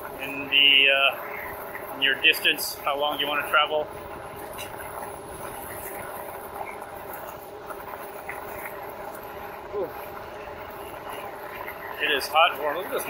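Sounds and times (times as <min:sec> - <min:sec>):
bike tyres rolling on gravel: 0:00.0 - 0:13.0.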